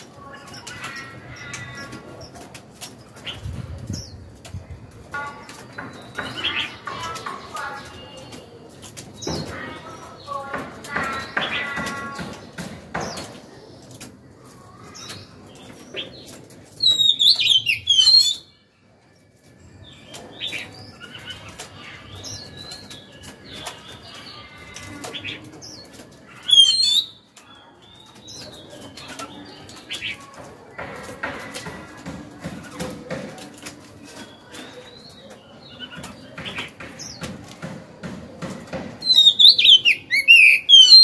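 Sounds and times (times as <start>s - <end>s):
bird singing whistled phrases: 39.1s - 41.0s.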